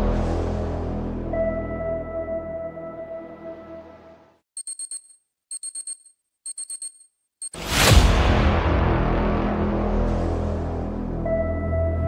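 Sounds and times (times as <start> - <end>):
ambient music: 0.0 - 4.4, 7.6 - 12.0
digital alarm clock beeping: 4.6 - 7.6.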